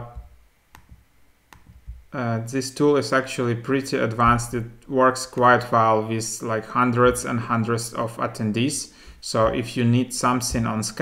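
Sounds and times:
person talking: 2.1s - 11.0s.

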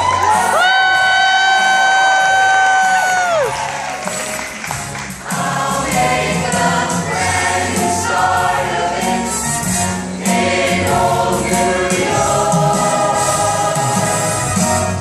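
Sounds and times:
choir singing in harmony: 5.2s - 15.0s.

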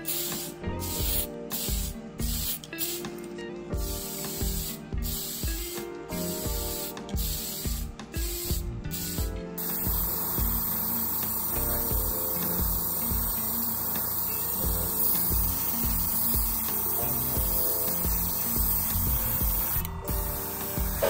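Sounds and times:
airbrush hissing: 0.0s - 21.0s
spray can hissing in bursts: 0.0s - 21.0s.

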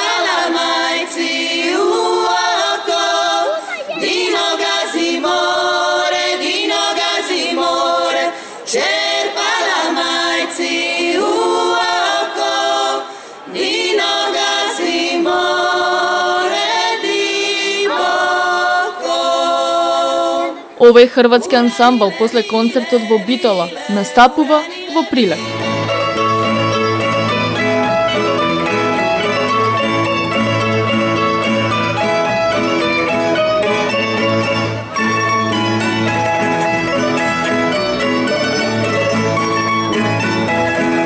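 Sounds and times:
women singing a cappella: 0.0s - 25.6s.

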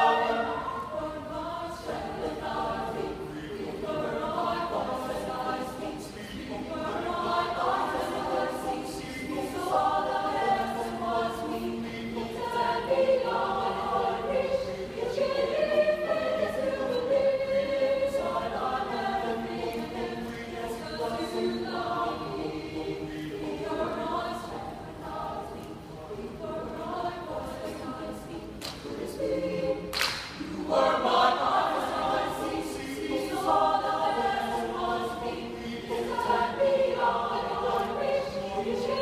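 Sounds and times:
choir singing a cappella: 0.0s - 39.0s.

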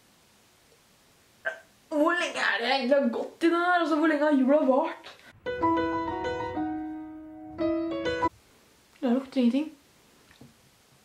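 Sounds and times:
woman speaking: 1.9s - 5.2s, 9.0s - 9.8s.

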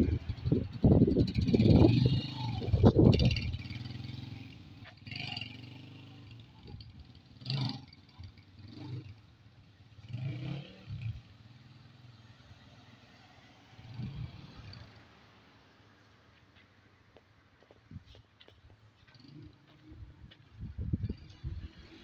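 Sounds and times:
small motorcycle engine revving: 0.0s - 13.1s.

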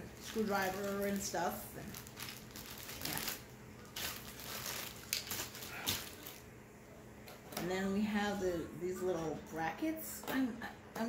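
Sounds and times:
plastic bag crinkling: 0.0s - 6.5s.

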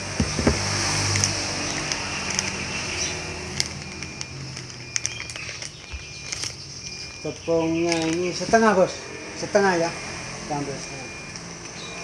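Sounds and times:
plastic bag crinkling: 1.7s - 7.2s, 7.8s - 8.4s.

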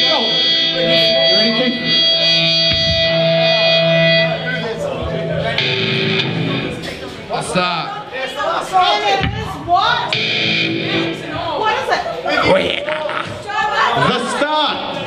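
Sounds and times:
electric guitar held tone: 0.0s - 7.4s, 10.0s - 11.8s.

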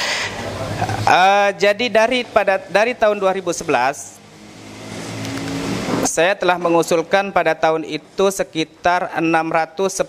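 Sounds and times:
vehicle engine approaching: 0.0s - 7.2s.

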